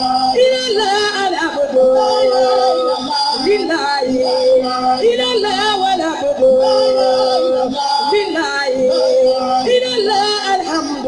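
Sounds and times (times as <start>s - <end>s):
person singing with ornamented slides: 0.0s - 11.0s.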